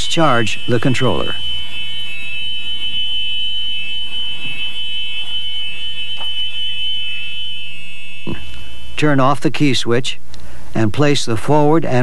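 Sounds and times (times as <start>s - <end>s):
high-pitched warning buzzer: 0.0s - 9.4s
faint low hum: 0.0s - 12.0s.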